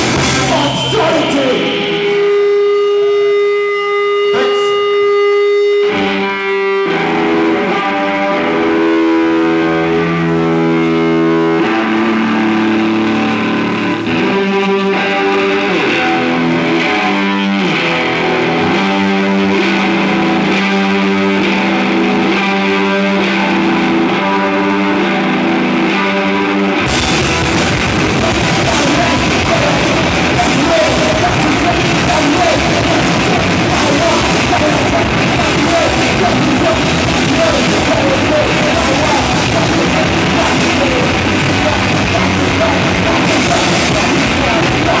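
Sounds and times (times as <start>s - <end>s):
live rock band with distorted guitars: 0.0s - 45.0s.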